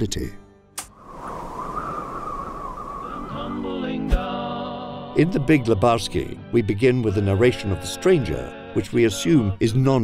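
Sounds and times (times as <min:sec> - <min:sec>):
wind howling: 0:00.9 - 0:04.3.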